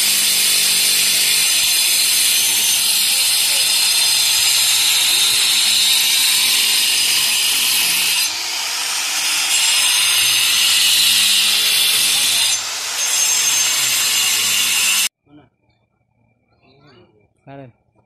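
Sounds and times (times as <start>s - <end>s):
loud high-pitched hiss: 0.0s - 15.1s.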